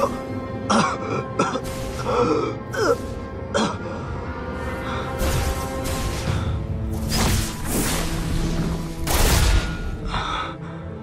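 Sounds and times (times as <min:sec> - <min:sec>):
man coughing and groaning: 0:00.0 - 0:04.0
background music: 0:00.0 - 0:11.0.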